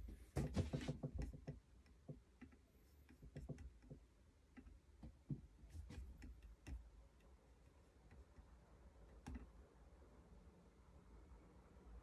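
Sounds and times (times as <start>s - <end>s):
faint clicks and soft knocks: 0.0s - 9.6s.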